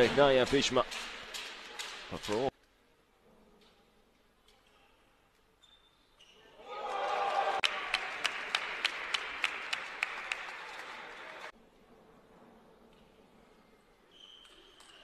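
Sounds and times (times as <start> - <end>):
arena crowd noise: 6.5 - 11.6.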